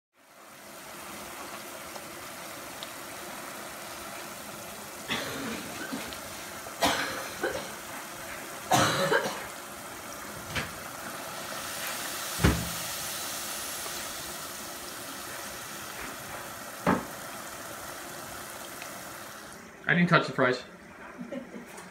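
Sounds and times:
oil sizzling in a pot: 0:00.1 - 0:21.1.

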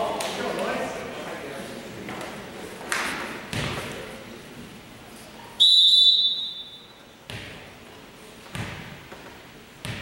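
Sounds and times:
referee's whistle blast: 0:05.6 - 0:06.9.

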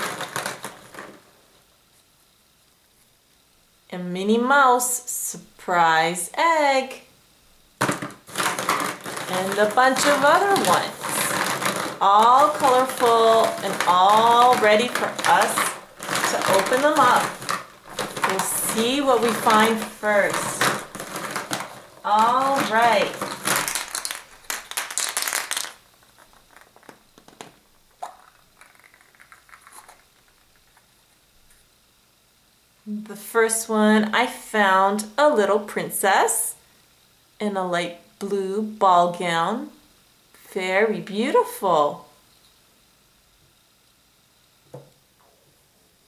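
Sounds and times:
plastic egg halves scraping: 0:00.0 - 0:01.2, 0:07.9 - 0:30.8
plastic eggs clattering: 0:00.0 - 0:01.3, 0:07.8 - 0:30.9.

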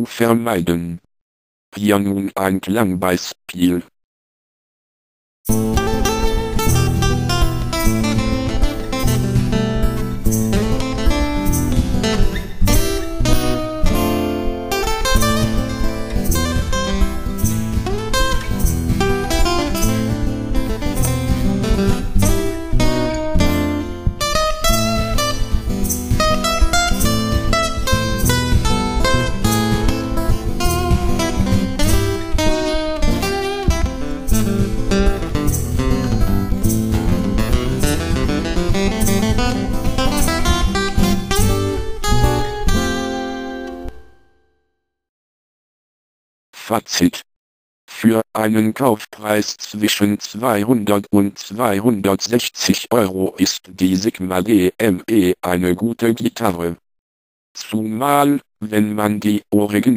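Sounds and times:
acoustic guitar strumming: 0:05.5 - 0:44.3.

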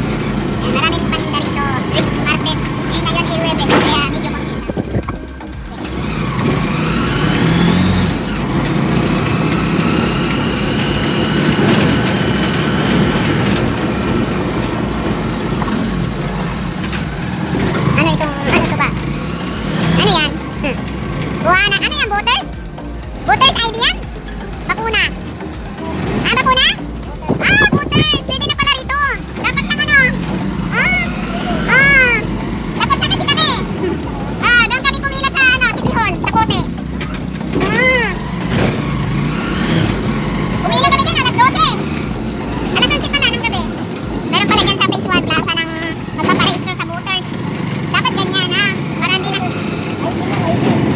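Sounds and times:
people's voices: 0:00.0 - 0:50.9
vehicle engines rumbling: 0:00.0 - 0:50.9
people talking: 0:00.6 - 0:05.9, 0:17.9 - 0:19.0, 0:19.9 - 0:20.8, 0:21.4 - 0:22.6, 0:23.3 - 0:24.0, 0:24.6 - 0:25.2, 0:25.8 - 0:36.7, 0:37.5 - 0:38.3, 0:40.6 - 0:41.9, 0:42.6 - 0:50.9.

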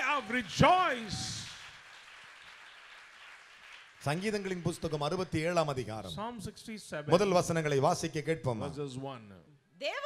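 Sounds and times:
faint applause: 0:00.0 - 0:05.5.

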